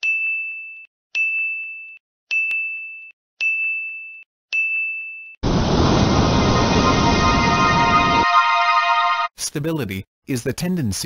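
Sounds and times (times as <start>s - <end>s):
loud dense full-range sound: 5.4s - 9.3s.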